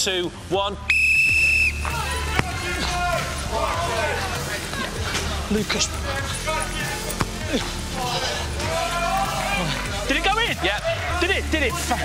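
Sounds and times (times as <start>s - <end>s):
music: 0.0s - 12.0s
whistle blast: 0.9s - 2.0s
people shouting: 1.7s - 12.0s
football being kicked: 1.8s - 2.9s, 7.1s - 7.6s.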